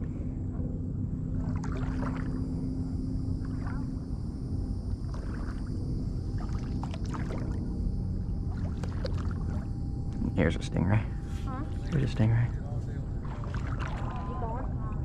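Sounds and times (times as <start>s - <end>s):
low steady rumble: 0.0s - 15.0s
legs wading through water: 1.3s - 2.7s, 3.4s - 4.0s, 4.9s - 7.8s, 8.4s - 9.7s, 13.1s - 15.0s.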